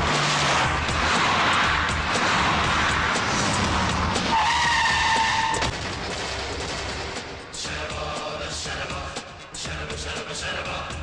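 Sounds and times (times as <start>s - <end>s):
car tyres skidding and squealing: 0.0s - 6.6s.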